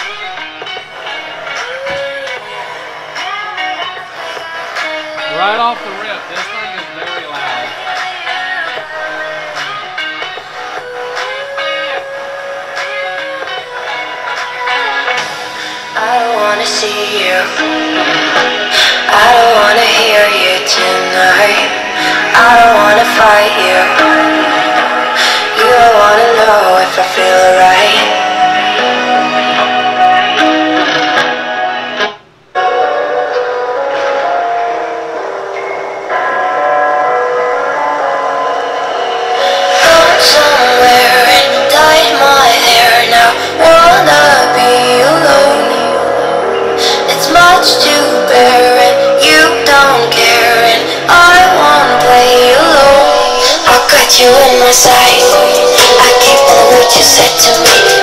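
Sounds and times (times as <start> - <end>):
guitar music over speakers: 0.0 - 58.0.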